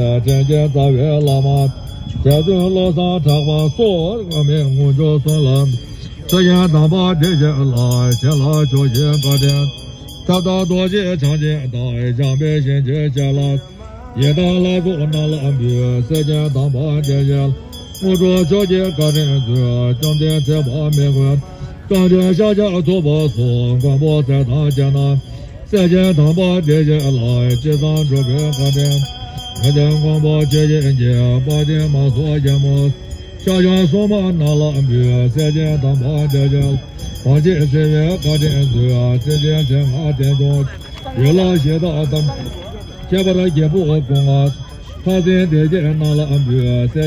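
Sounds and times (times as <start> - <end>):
man chanting prayers: 0.0 - 47.0.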